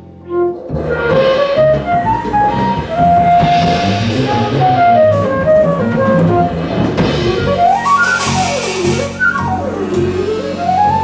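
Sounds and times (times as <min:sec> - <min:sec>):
plucked upright bass: 0:00.0 - 0:11.0
drum kit with cymbals: 0:00.1 - 0:11.0
flute playing fast runs: 0:00.3 - 0:11.0.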